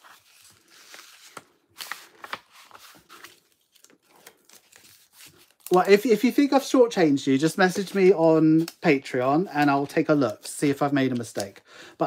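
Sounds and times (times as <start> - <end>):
plastic and cardboard rustling: 0.0 - 6.6.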